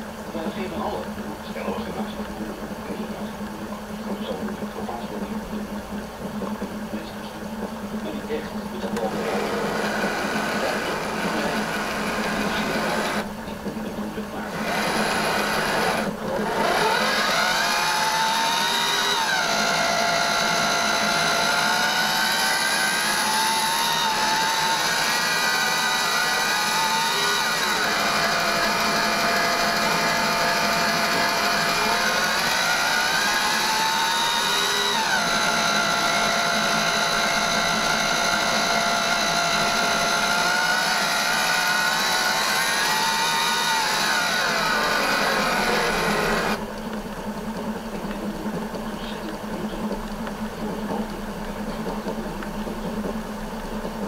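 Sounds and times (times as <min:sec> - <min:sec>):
vacuum cleaner motor whining: 0:08.4 - 0:46.7.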